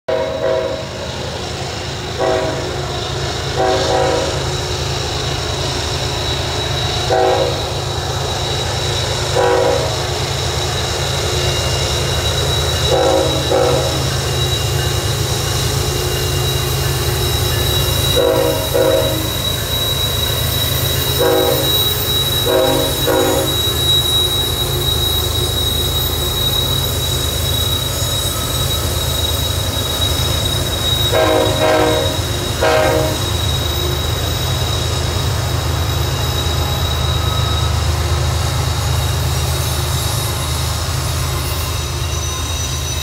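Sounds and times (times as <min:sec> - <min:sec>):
diesel locomotive engine rumble: 0:00.0 - 0:43.0
locomotive horn blasts: 0:00.1 - 0:01.0, 0:02.2 - 0:02.8, 0:03.5 - 0:04.4, 0:07.1 - 0:07.7, 0:09.4 - 0:10.0, 0:12.9 - 0:14.1, 0:18.2 - 0:19.3, 0:21.2 - 0:21.8, 0:22.4 - 0:23.6, 0:31.1 - 0:33.3.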